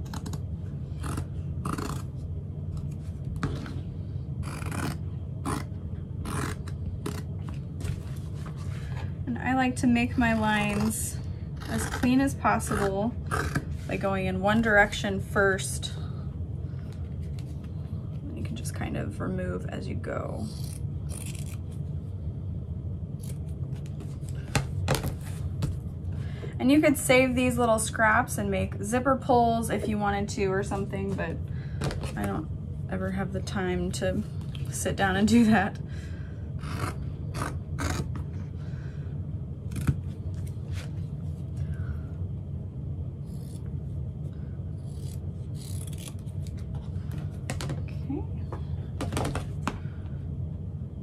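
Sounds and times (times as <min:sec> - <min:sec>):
steady low hum: 0:00.0 - 0:51.0
scissors snipping vinyl: 0:01.0 - 0:02.9, 0:04.4 - 0:07.5, 0:44.9 - 0:46.6.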